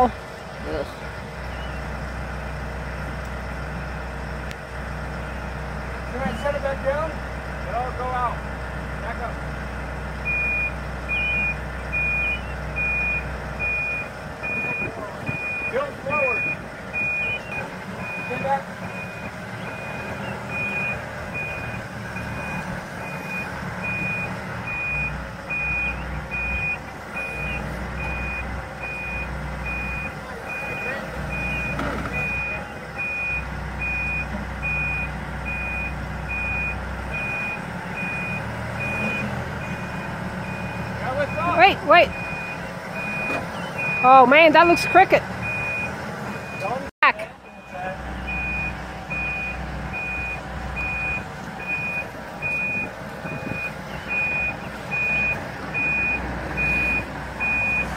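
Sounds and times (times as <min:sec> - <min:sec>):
back-up alarm beeping: 0:10.2 - 0:46.9, 0:47.5 - 0:57.9.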